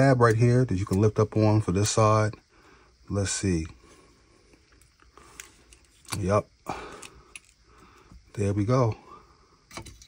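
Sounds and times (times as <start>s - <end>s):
light handling noise: 4.5s - 8.5s.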